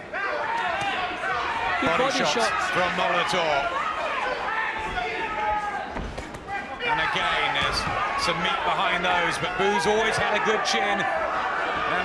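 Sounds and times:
arena voices: 0:00.0 - 0:12.0.

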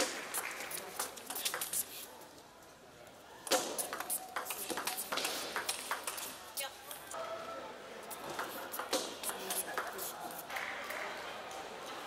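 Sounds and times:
table tennis ball clicking: 0:03.5 - 0:06.3.

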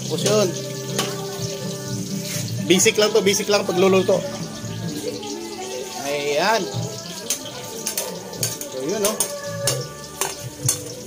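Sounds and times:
onion and garlic sizzling in oil: 0:00.0 - 0:11.0
metal spatula scraping a wok: 0:02.1 - 0:02.6, 0:07.2 - 0:11.0.

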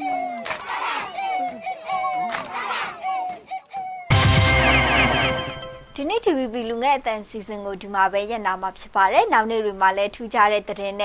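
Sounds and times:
children shouting and cheering: 0:00.0 - 0:05.5.

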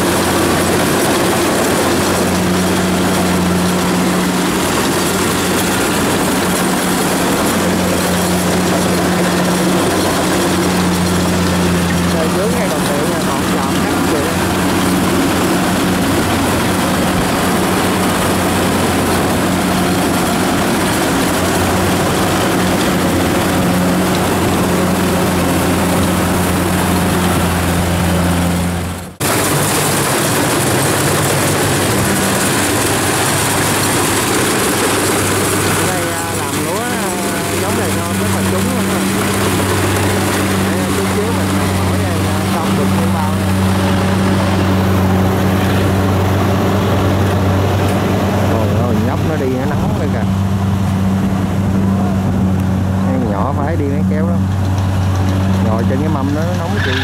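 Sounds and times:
combine harvester engine hum: 0:00.0 - 0:57.0
machinery rattle and whirr: 0:00.0 - 0:57.0.

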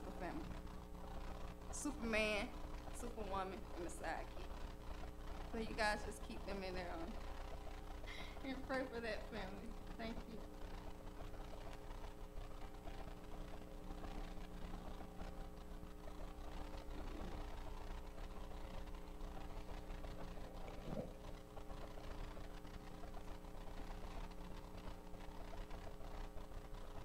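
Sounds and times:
low hum of held tones: 0:00.0 - 0:27.0.

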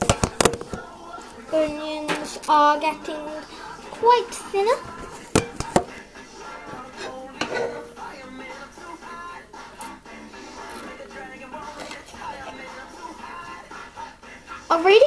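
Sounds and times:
radio music: 0:00.0 - 0:15.0.

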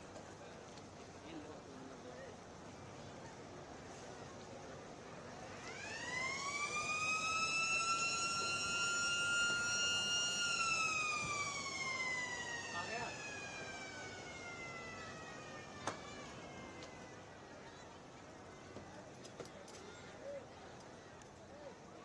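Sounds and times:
long wailing tone: 0:05.6 - 0:17.3.

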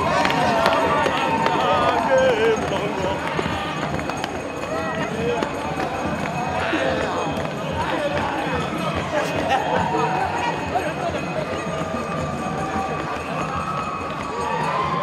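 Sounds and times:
crowd shouting and singing: 0:00.0 - 0:15.0
scattered claps: 0:00.0 - 0:15.0.

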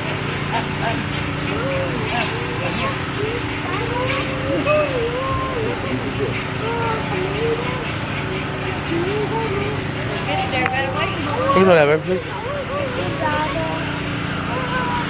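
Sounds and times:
low mechanical motor hum: 0:00.0 - 0:15.0
people talking: 0:00.0 - 0:15.0.

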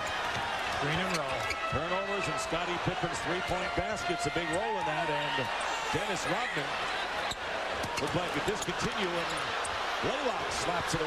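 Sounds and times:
arena crowd noise: 0:00.0 - 0:11.0
man commentating: 0:00.8 - 0:06.8, 0:08.0 - 0:09.4, 0:10.0 - 0:11.0.

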